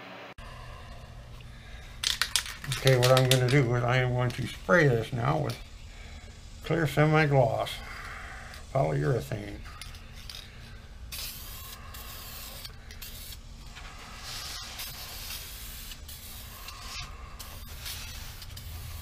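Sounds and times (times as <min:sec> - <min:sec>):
aerosol spray can hissing: 0:11.1 - 0:19.0.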